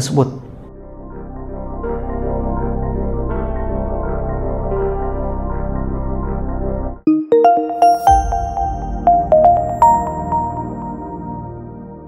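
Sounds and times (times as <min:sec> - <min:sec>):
climbing chime notes: 0:07.1 - 0:11.6.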